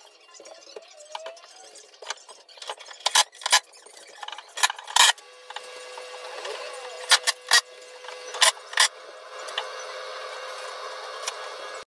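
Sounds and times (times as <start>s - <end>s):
room hum: 0.0s - 11.9s.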